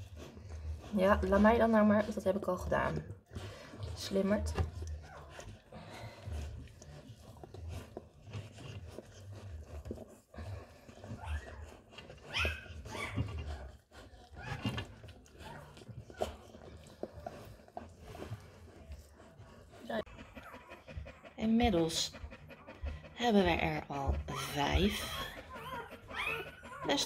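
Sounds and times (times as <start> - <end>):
puppies squealing and whimpering: 7.8 - 17.0, 20.0 - 27.0.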